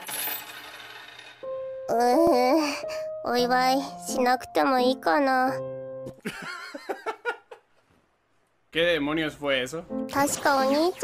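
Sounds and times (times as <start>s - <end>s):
coins clattering onto a table: 0.0s - 1.4s.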